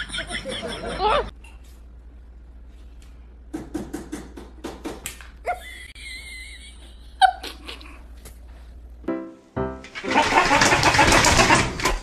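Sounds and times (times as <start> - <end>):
push toy clattering on wooden floor: 10.0 - 12.0.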